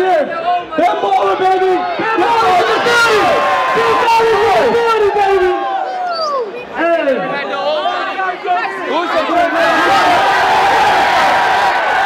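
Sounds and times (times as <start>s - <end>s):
large crowd shouting: 0.0s - 12.0s.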